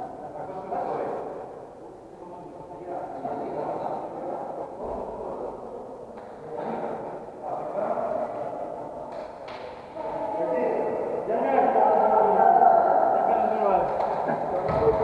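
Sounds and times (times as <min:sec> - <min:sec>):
people talking in echoing hall: 0:00.0 - 0:15.0.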